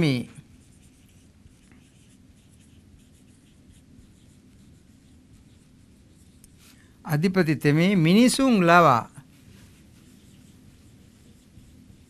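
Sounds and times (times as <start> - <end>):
marker scratching on whiteboard: 0.0 - 6.8, 9.3 - 12.0.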